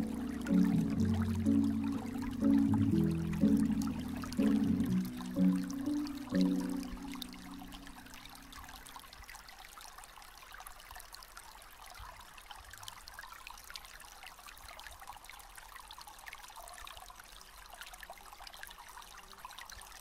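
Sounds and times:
music: 0.0 - 8.0
trickling stream water: 0.0 - 20.0.

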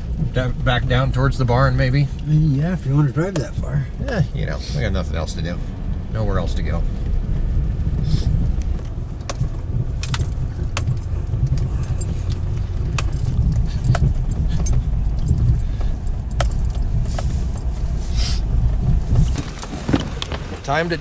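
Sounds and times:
road and engine rumble: 0.0 - 21.0
light clicks and rattles: 7.8 - 21.0.

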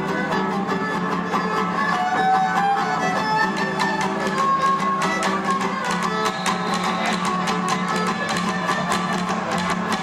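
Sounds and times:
guitar strumming: 0.0 - 10.0
violin melody: 0.0 - 10.0
drum strokes: 3.7 - 10.0.

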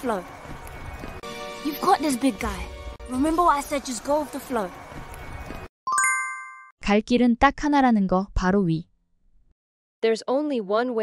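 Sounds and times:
bright chime ding: 5.9 - 6.7.

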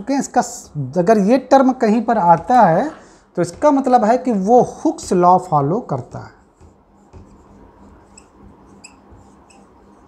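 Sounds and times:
marker squeaking on whiteboard: 1.5 - 10.0.

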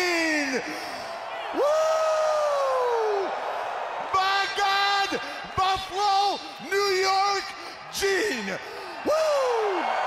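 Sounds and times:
arena crowd noise: 0.0 - 10.0
man yelling high-pitched: 4.1 - 9.9.

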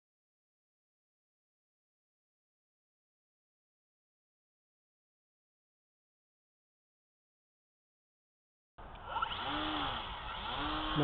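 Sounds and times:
model airplane motor buzzing: 8.9 - 11.0.

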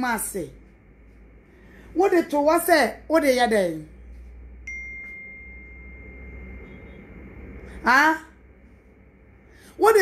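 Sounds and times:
faint low hum: 0.0 - 10.0
high-pitched electronic beep: 4.7 - 7.3.

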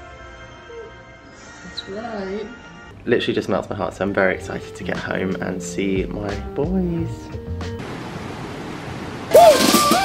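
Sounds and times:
loud rush of splash noise: 7.8 - 10.0
people shouting: 9.3 - 10.0.

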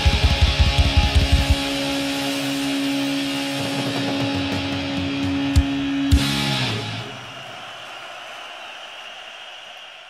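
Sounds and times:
fast pounding drums: 0.0 - 2.4
distorted electric guitar note ringing: 0.1 - 7.0.

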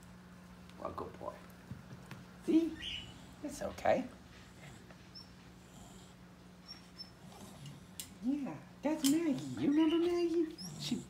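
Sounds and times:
steady low hum: 0.0 - 11.0
dog whining: 5.1 - 7.7, 9.3 - 11.0.

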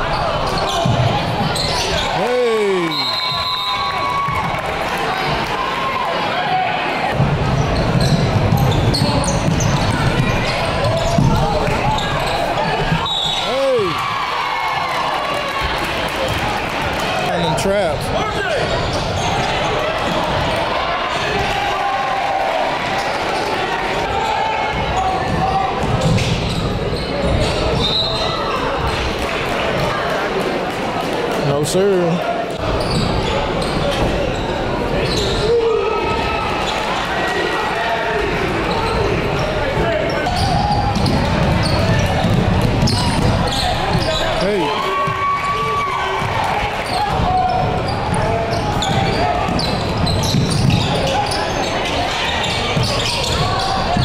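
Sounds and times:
voices echoing in gym: 0.0 - 54.0
basketball bouncing on court: 7.1 - 13.2, 40.3 - 44.3, 44.9 - 51.2, 52.4 - 54.0.

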